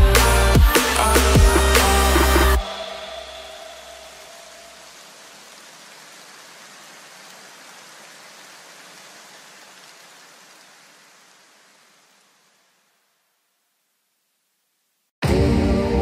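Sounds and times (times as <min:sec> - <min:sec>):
electronic background music: 0:00.0 - 0:04.2
steady hiss: 0:00.2 - 0:15.1.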